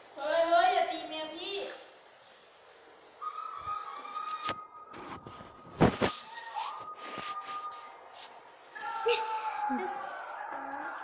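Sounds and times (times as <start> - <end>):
high whistle-like tone: 3.2 - 8.2.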